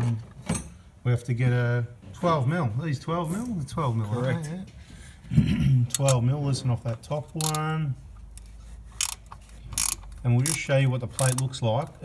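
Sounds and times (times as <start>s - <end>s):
ratcheting spanner clicking: 5.9s - 6.2s, 7.4s - 7.7s, 8.3s - 12.0s.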